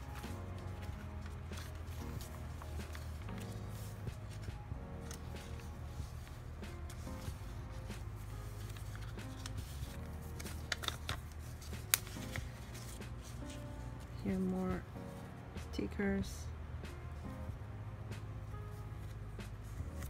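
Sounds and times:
paper rustling and tapping: 0.0s - 13.6s
paper pages turning: 0.0s - 14.3s, 18.7s - 20.0s
soft background music: 0.0s - 20.0s.

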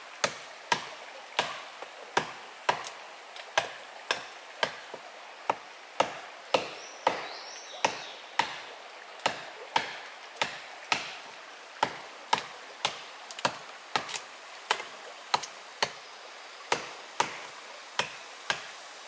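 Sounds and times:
machete chopping wood: 0.2s - 1.6s, 2.2s - 3.0s, 3.6s - 4.9s, 5.5s - 11.2s, 11.8s - 16.0s, 16.7s - 18.7s.

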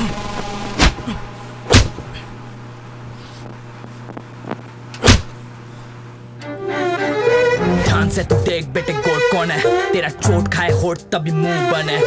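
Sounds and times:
steady low hum: 0.0s - 11.2s.

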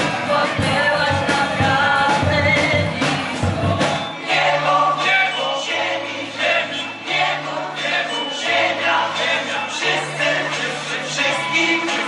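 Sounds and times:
young voices singing a carol: 0.0s - 12.0s.

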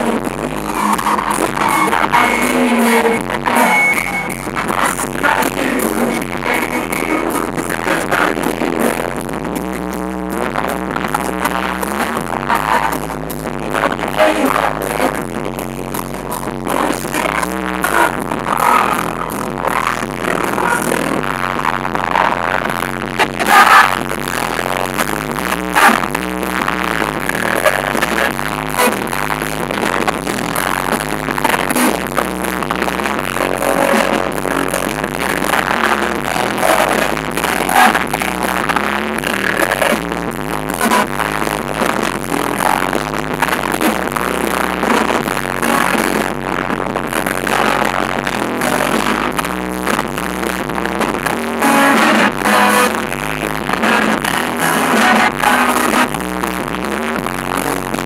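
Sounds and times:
singers singing together: 0.8s - 7.4s.

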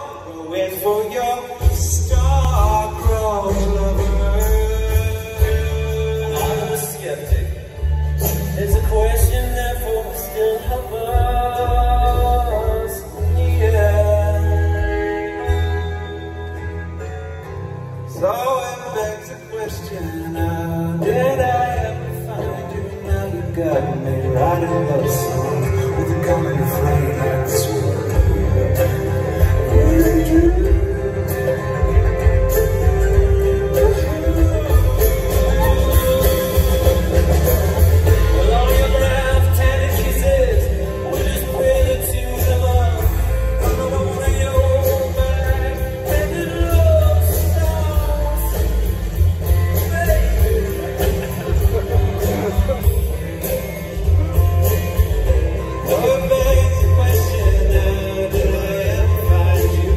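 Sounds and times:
person singing: 0.0s - 17.4s, 18.0s - 59.9s
acoustic guitars playing folk song: 0.0s - 59.9s.

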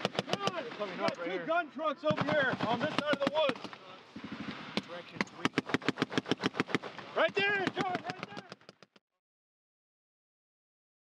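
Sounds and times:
automatic weapon fire: 4.2s - 8.6s.

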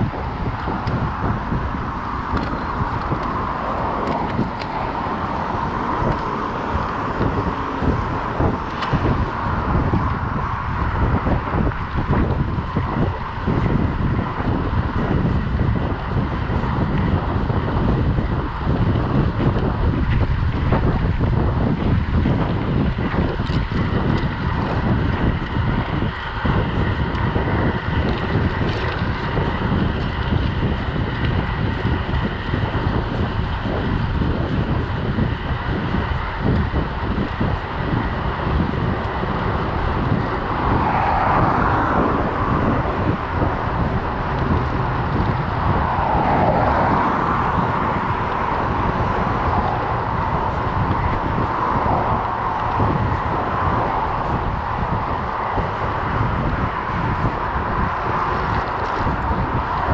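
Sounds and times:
car passing: 0.0s - 22.6s, 37.0s - 59.9s
wind buffeting microphone: 0.0s - 59.9s.

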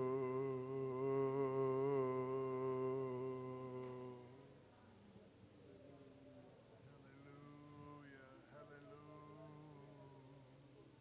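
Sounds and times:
man singing a long low note: 0.0s - 4.5s, 7.1s - 10.6s.

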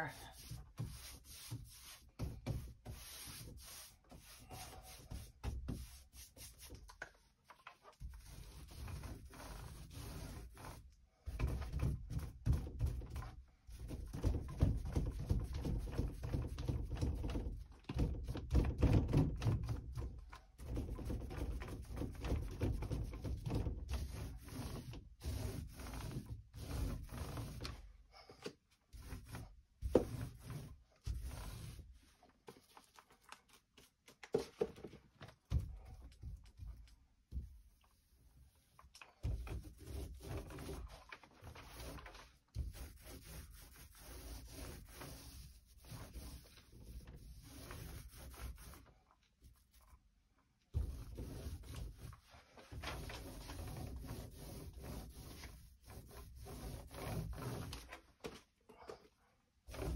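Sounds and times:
brush rubbing on wood: 0.0s - 6.7s, 8.1s - 10.8s, 21.2s - 27.6s, 28.9s - 32.9s, 39.3s - 48.9s, 50.8s - 58.0s
paint roller rolling: 0.2s - 10.8s, 11.4s - 27.8s, 28.9s - 34.6s, 35.5s - 49.0s, 50.8s - 58.1s.

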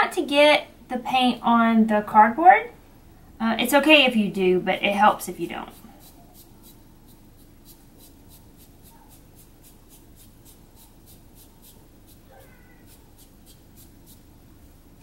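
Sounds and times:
foam brush dabbing paint: 4.7s - 14.9s
faint high-pitched call: 12.3s - 13.0s.

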